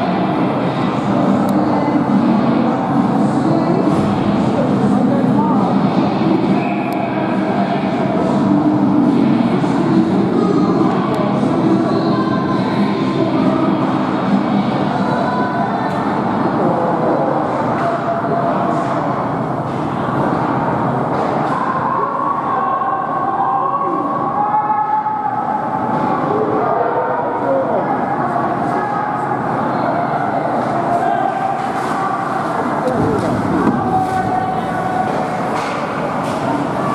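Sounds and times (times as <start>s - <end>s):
spectators and players calling out: 17.2s - 36.9s.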